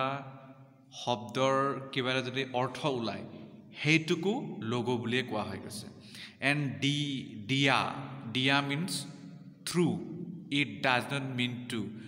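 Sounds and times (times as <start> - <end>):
man speaking slowly: 0.0 - 12.0.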